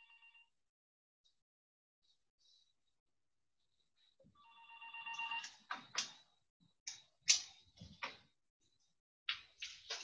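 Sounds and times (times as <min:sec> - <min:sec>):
telephone ringing faintly: 0:04.4 - 0:05.7.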